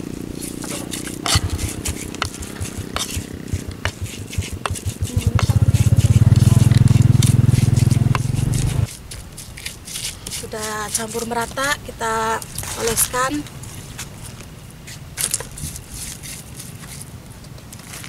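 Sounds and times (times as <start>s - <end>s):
stone pestle grinding in mortar: 0.3s - 11.8s, 14.9s - 17.0s
loud low pulsing drone: 5.0s - 8.9s.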